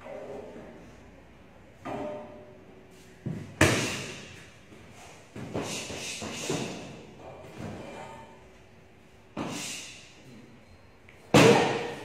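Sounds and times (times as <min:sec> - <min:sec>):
kicks and punches thudding: 0:11.3 - 0:12.0.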